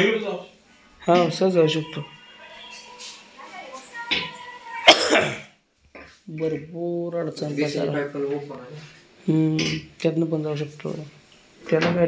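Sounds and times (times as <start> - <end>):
person coughing: 4.8 - 5.5.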